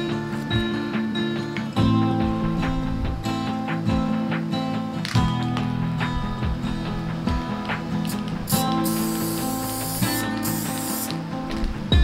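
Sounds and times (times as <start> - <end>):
background music: 0.0 - 12.0
aerosol can hissing: 7.8 - 11.6.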